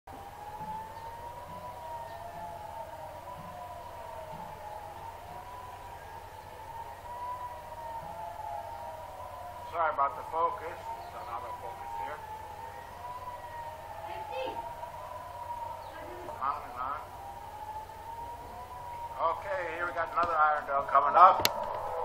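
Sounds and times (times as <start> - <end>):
air raid sirens wailing: 0.1 - 22.0.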